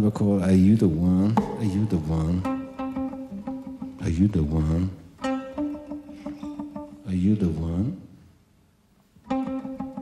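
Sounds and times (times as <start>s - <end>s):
guitar playing: 0.9s - 8.0s, 9.2s - 10.0s.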